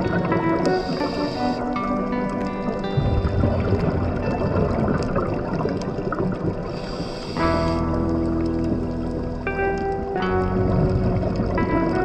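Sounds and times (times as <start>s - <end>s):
muffled underwater rumble: 0.0s - 12.0s
underwater bubbling: 0.0s - 12.0s.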